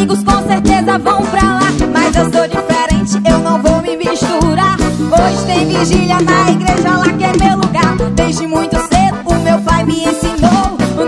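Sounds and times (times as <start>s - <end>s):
live gospel band music: 0.0s - 11.0s.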